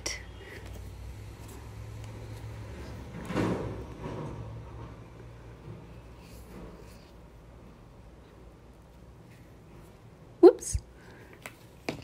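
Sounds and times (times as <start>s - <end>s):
soft rubbing and handling: 0.4s - 3.2s, 5.6s - 10.3s.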